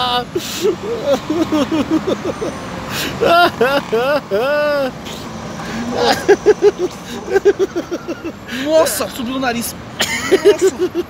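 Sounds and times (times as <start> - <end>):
man crying out and moaning: 0.0 - 5.1, 5.7 - 9.1
man laughing: 0.0 - 9.1, 10.0 - 11.0
passing city traffic: 0.0 - 11.0.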